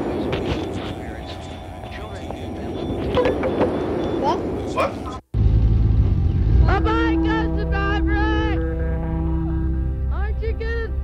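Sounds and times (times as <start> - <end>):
low rumble: 5.4 - 10.1.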